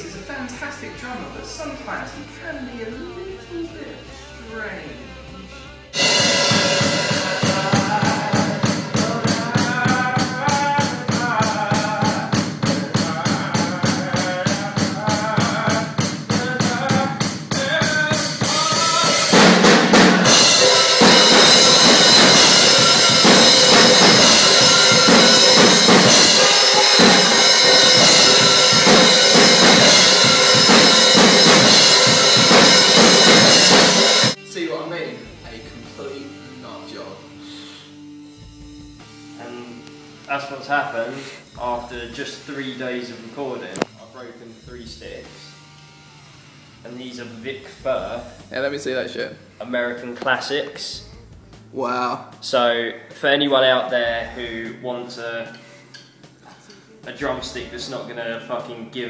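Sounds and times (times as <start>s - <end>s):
crashing cymbals: 5.9s - 15.0s, 15.7s - 34.7s
drum kit beat: 5.9s - 34.8s, 38.2s - 39.8s.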